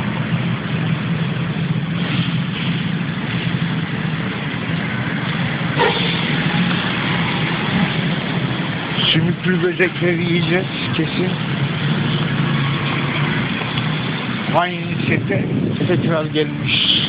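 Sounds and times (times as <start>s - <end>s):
car engine running: 0.0s - 17.0s
street traffic: 0.0s - 17.0s.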